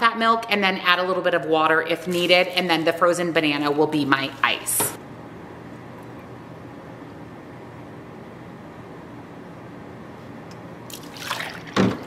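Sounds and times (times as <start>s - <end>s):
liquid splashing into blender cup: 10.9s - 12.0s.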